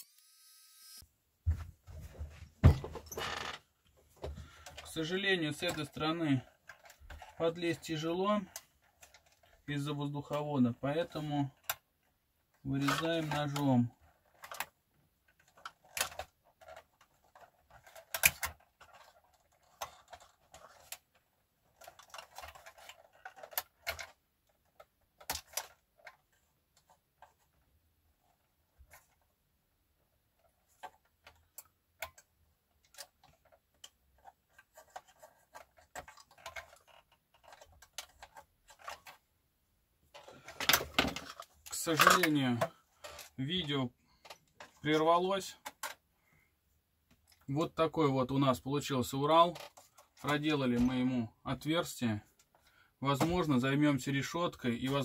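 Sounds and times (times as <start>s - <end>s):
man speaking: 4.9s - 6.5s, 7.4s - 8.5s, 9.7s - 11.6s, 12.7s - 13.9s, 41.7s - 42.7s, 43.4s - 44.0s, 44.8s - 45.6s, 47.5s - 49.6s, 50.2s - 52.2s, 53.0s - 55.0s
craft knife scraping plastic: 32.8s - 39.2s.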